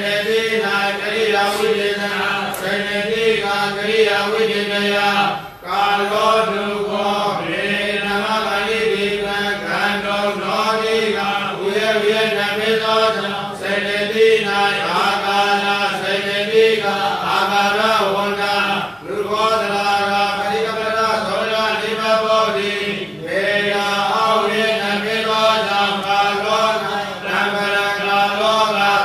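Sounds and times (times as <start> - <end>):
man reciting in monotone: 0.0 - 29.0.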